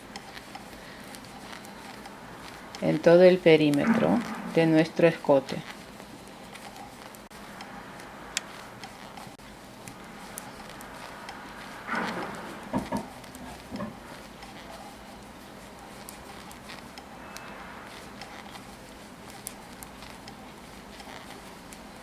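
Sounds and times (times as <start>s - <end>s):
knitting needles clicking: 0.0s - 5.8s, 6.5s - 11.8s, 15.9s - 21.9s
yarn rubbing: 0.0s - 22.0s
knocks: 11.9s - 13.1s.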